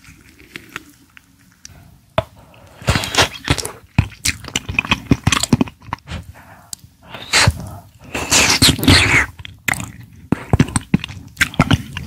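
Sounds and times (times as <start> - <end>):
wet mouth smacks and chewing: 8.2 - 12.0.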